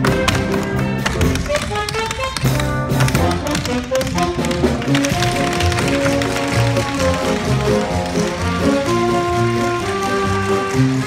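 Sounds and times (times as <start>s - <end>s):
show tune music: 0.0s - 11.0s
tap shoes clicking: 0.0s - 11.0s.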